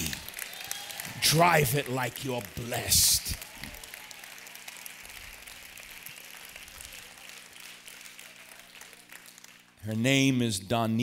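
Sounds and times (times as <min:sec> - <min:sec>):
congregation applauding: 0:00.0 - 0:09.9.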